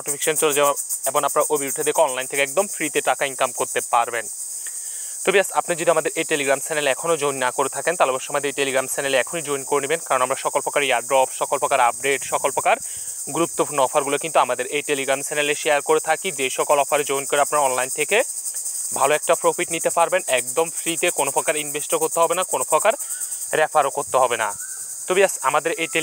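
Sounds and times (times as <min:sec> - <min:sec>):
man speaking: 0:00.0 - 0:04.3, 0:05.3 - 0:18.3, 0:18.9 - 0:26.0
steady high-pitched hiss: 0:00.0 - 0:26.0.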